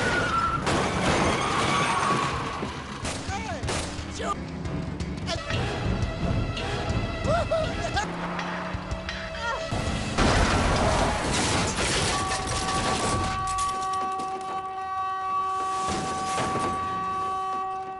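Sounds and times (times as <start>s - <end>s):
car crash: 0.0s - 4.0s, 9.7s - 14.6s, 15.6s - 17.7s
film music: 2.2s - 17.9s.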